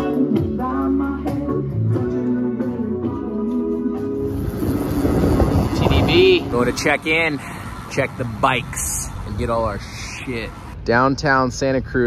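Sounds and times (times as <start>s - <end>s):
road traffic noise: 4.0s - 10.9s
wind rushing on microphone: 4.2s - 10.8s.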